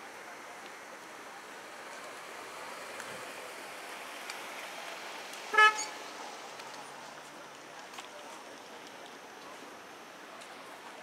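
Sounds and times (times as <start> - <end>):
car horn toot: 5.5 - 6.0.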